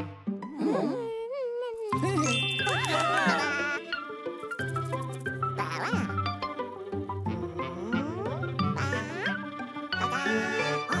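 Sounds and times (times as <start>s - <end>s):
children's cartoon music: 1.8s - 11.0s.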